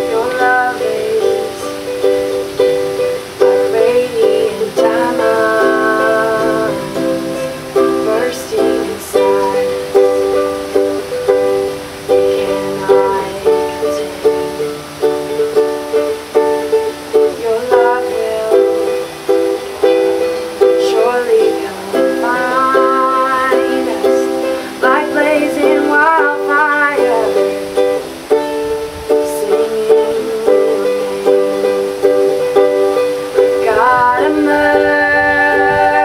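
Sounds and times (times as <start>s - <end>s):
ukulele strumming chords: 0.0s - 36.0s.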